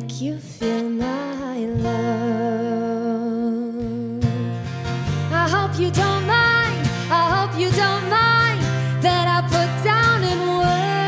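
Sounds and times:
acoustic guitar: 0.0 - 11.0.

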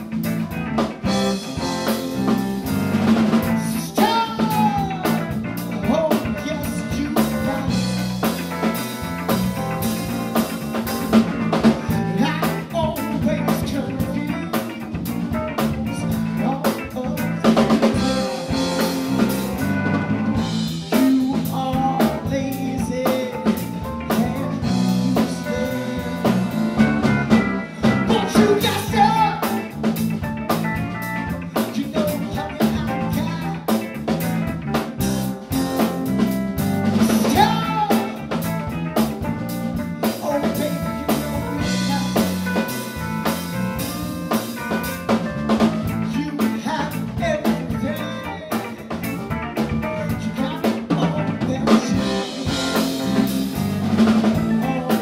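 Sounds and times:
live rock-funk band playing: 0.0 - 55.0
woman singing: 20.9 - 26.5, 28.1 - 29.5.

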